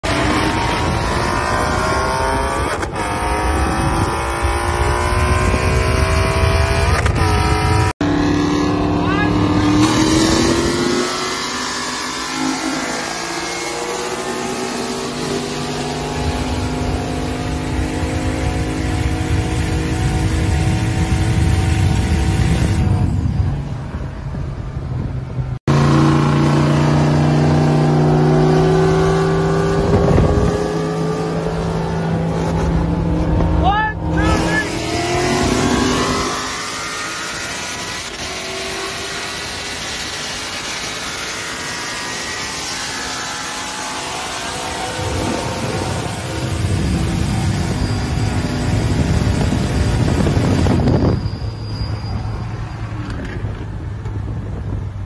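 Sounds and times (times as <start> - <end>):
car engine accelerating through gears: 0.0 - 23.6, 25.0 - 51.2.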